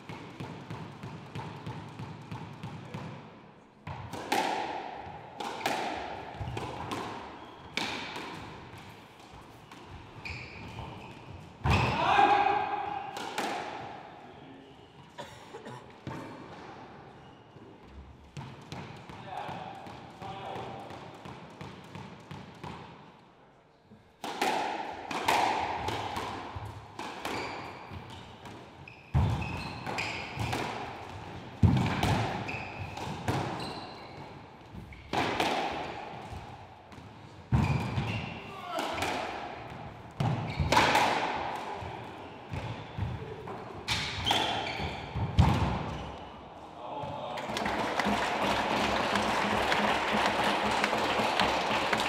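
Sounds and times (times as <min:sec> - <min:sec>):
squash ball hits echoing: 0:00.0 - 0:14.1, 0:18.3 - 0:23.0, 0:24.1 - 0:46.3, 0:46.9 - 0:52.0.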